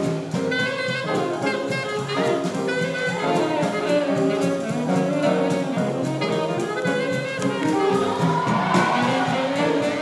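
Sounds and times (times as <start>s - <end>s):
big band swing jazz: 0.0s - 10.0s.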